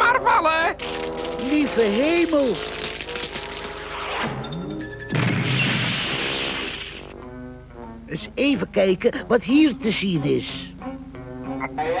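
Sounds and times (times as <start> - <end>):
cartoon crash: 5.1 - 7.1.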